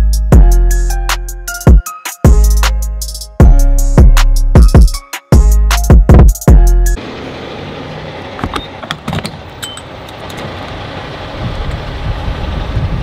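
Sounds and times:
vehicle engine and traffic noise: 0:06.9 - 0:13.0.

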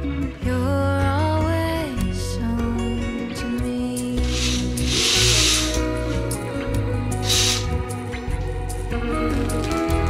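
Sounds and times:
gentle background song: 0:00.0 - 0:10.0
fabric curtains swishing shut: 0:04.2 - 0:06.3.

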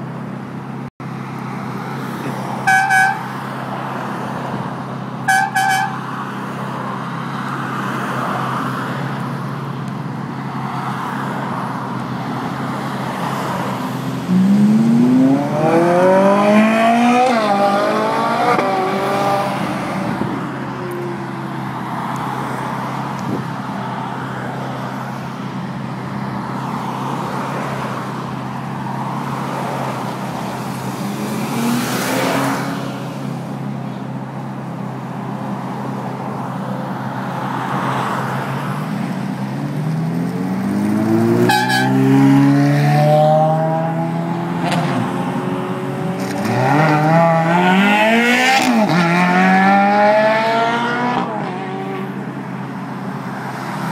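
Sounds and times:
cars passing: 0:00.0 - 0:53.9
road noise: 0:00.0 - 0:53.9
sports cars accelerating: 0:10.4 - 0:33.4, 0:37.1 - 0:53.9.

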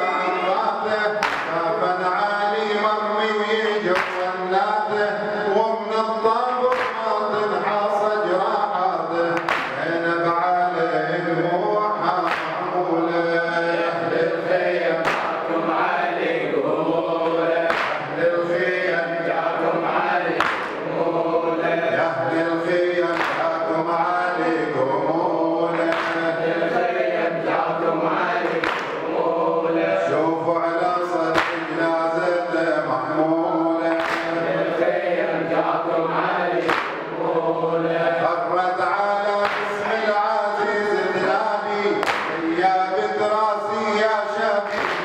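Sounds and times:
man chanting a lament: 0:00.0 - 0:45.0
voices singing in chorus: 0:00.0 - 0:45.0
sharp percussive hits: 0:01.1 - 0:01.8, 0:06.7 - 0:07.3, 0:09.3 - 0:10.0, 0:12.2 - 0:12.8, 0:14.9 - 0:15.5, 0:17.6 - 0:18.2, 0:20.4 - 0:20.9, 0:23.1 - 0:23.8, 0:25.6 - 0:26.4, 0:28.4 - 0:29.1, 0:31.3 - 0:31.9, 0:33.8 - 0:34.5, 0:36.6 - 0:37.2, 0:42.0 - 0:42.5, 0:44.6 - 0:45.0
hand slapping chest: 0:01.2 - 0:01.6, 0:04.0 - 0:04.2, 0:06.7 - 0:07.0, 0:09.4 - 0:09.8, 0:12.3 - 0:12.6, 0:15.0 - 0:15.4, 0:17.7 - 0:18.0, 0:20.4 - 0:20.8, 0:23.1 - 0:23.4, 0:25.9 - 0:26.2, 0:28.4 - 0:29.0, 0:31.3 - 0:31.7, 0:33.9 - 0:34.3, 0:36.6 - 0:37.0, 0:39.4 - 0:39.7, 0:42.0 - 0:42.4, 0:44.8 - 0:45.0.

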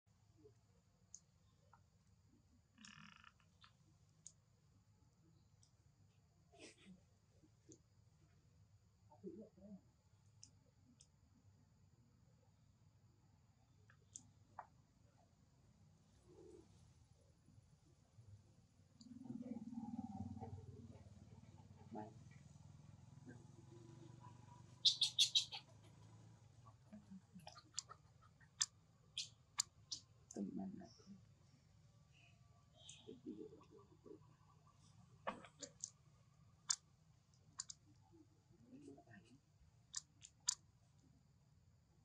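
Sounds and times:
faint low hum: 0:00.1 - 0:42.0
shrill chirps: 0:24.7 - 0:25.7.

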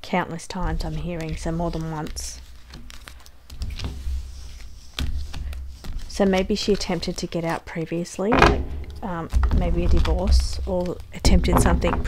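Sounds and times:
low rumble of hands handling cards: 0:00.5 - 0:07.5, 0:08.3 - 0:12.0
cards being shuffled by hand: 0:00.5 - 0:07.7, 0:08.7 - 0:12.0.

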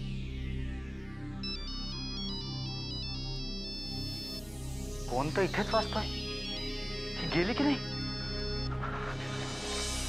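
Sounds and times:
background music: 0:00.0 - 0:10.0
mobile phone ringtone: 0:05.2 - 0:09.2.

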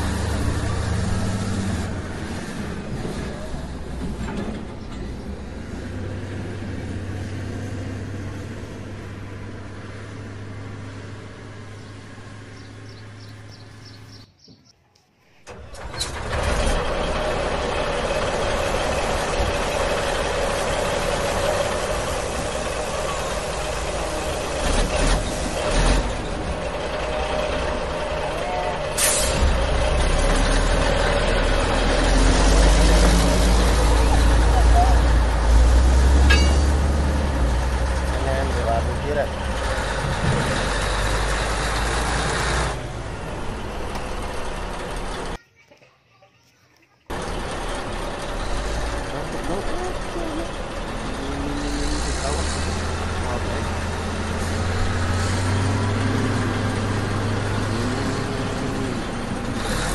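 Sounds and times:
heavy truck engine running: 0:00.0 - 0:14.2, 0:15.4 - 0:45.4, 0:47.1 - 0:59.9.

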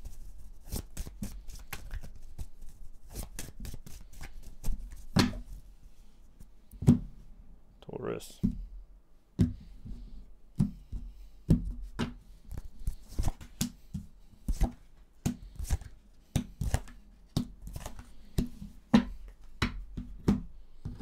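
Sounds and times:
cards slapping on wooden table: 0:11.6 - 0:20.9.

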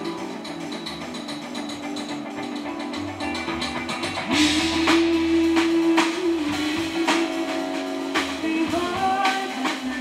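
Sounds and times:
live jazz band playing: 0:00.0 - 0:10.0.

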